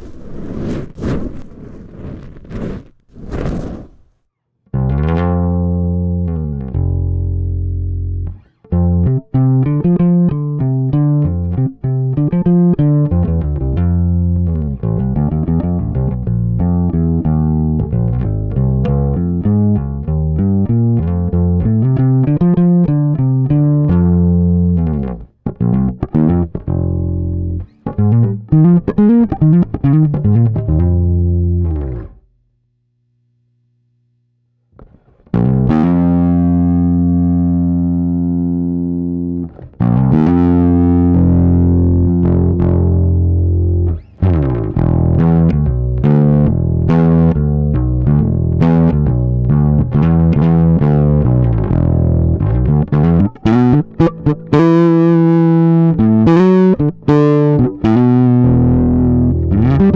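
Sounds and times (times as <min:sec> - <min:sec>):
overdriven electric bass line: 0:04.7 - 0:32.6, 0:34.7 - 0:59.9.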